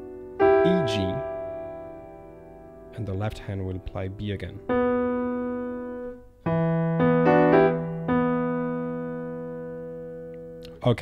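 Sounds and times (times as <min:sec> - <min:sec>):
piano playing a riff: 0:00.0 - 0:10.8.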